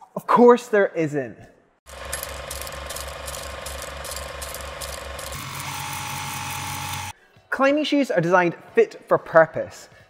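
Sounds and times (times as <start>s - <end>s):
film projector clattering: 1.9s - 7.1s.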